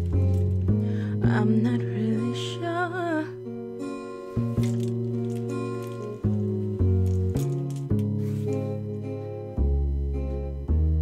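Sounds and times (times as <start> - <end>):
acoustic guitar chords: 0.0 - 11.0
person singing with vibrato: 1.1 - 3.4.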